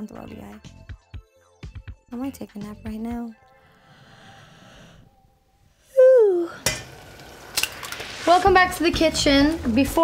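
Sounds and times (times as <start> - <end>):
steady hiss in saucepan: 6.6 - 9.6.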